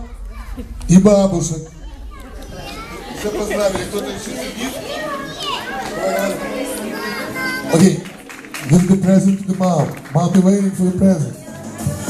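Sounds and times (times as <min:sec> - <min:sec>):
children chattering and calling out: 0:00.0 - 0:09.5, 0:11.2 - 0:12.0.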